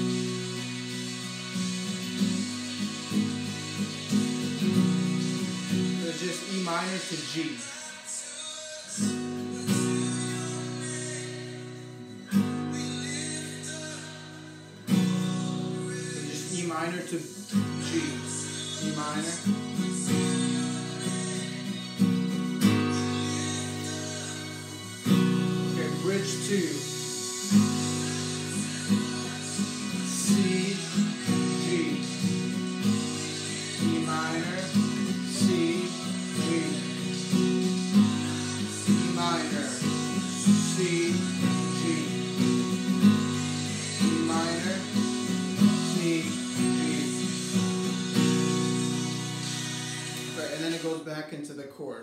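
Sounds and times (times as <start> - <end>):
acoustic guitar strumming: 0.0 - 51.5
person singing: 0.0 - 52.0.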